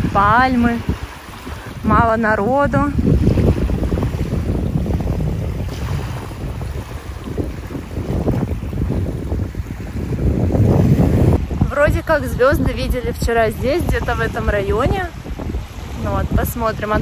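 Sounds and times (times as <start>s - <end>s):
small waves washing on sand: 0.0s - 17.0s
wind buffeting microphone: 0.0s - 17.0s.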